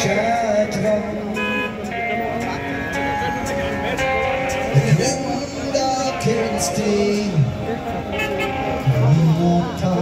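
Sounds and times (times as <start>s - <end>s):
crowd chatter: 0.0s - 10.0s
live rock band with guitar: 0.0s - 10.0s.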